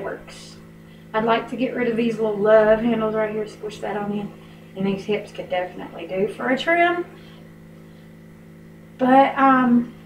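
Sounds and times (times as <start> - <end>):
low room noise hum: 0.0 - 10.0.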